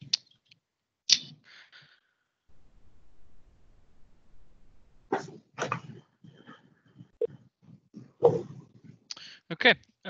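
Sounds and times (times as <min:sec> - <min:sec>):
dog barking: 0:05.1 - 0:06.0, 0:08.2 - 0:08.6.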